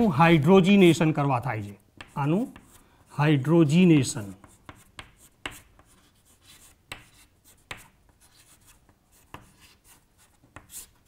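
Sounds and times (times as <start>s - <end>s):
chalk tapping and scraping on chalkboard: 0.6s - 3.2s, 3.8s - 11.0s.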